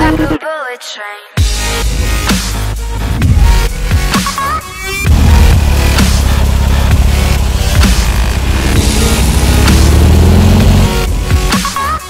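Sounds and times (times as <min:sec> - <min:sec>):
dubstep music: 0:01.4 - 0:12.0
car engine running: 0:04.7 - 0:12.0.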